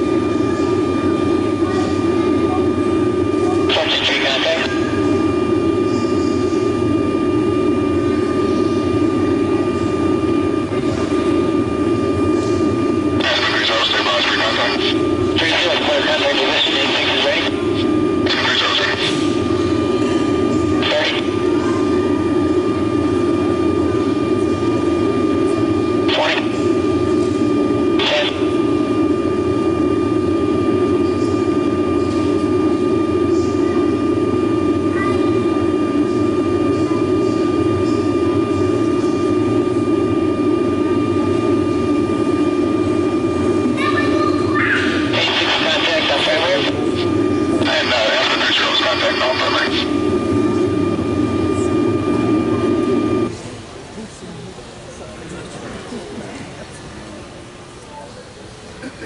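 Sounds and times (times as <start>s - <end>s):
aircraft cabin drone with thin whine: 0.0s - 59.0s
intercom radio hiss bursts: 13.2s - 17.5s, 18.2s - 19.3s, 20.8s - 21.4s, 26.0s - 26.6s, 27.9s - 28.6s, 45.0s - 49.9s.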